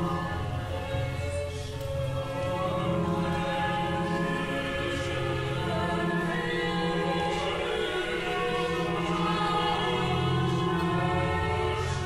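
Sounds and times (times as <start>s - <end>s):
choir singing held chords: 0.0s - 12.0s.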